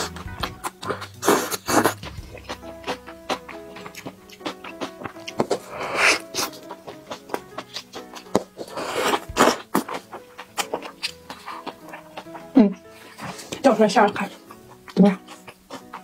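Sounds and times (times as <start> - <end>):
chewing and wet mouth sounds: 0.0 - 16.0
light background music: 0.0 - 16.0.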